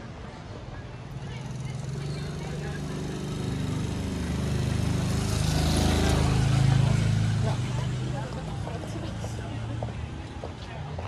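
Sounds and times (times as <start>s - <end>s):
small motorcycle engine: 1.2s - 8.6s.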